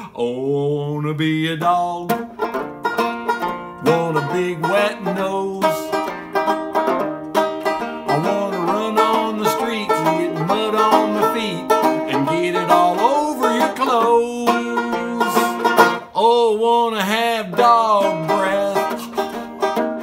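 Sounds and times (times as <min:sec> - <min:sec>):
man singing long gliding notes: 0:00.0 - 0:02.3, 0:03.8 - 0:06.2, 0:08.0 - 0:19.6
banjo strummed and picked: 0:00.0 - 0:20.0.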